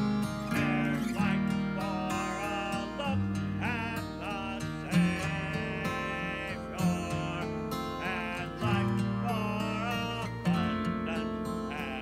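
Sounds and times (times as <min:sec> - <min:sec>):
man singing a hymn: 0:00.0 - 0:12.0
strummed acoustic guitar: 0:00.0 - 0:12.0.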